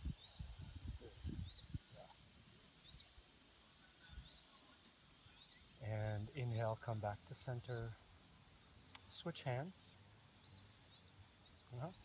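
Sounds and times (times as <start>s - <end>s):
bird chirping: 0.0s - 12.0s
faint high hiss: 0.0s - 12.0s.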